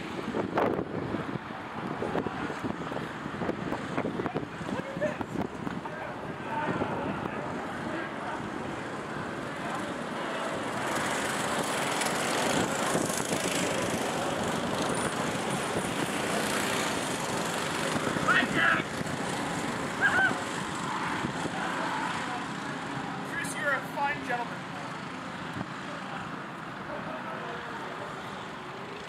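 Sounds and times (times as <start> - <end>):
go-kart engines running: 0.0 - 29.0.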